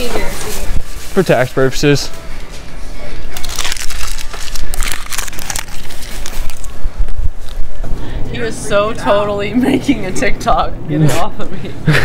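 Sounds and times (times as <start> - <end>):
loud rustling and crinkling: 0.0 - 2.2, 3.3 - 7.8.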